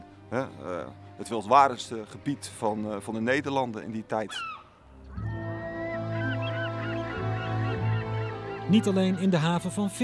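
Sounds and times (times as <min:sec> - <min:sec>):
bagpipe chanter melody: 0:05.1 - 0:09.9
bagpipe drone: 0:05.1 - 0:09.9.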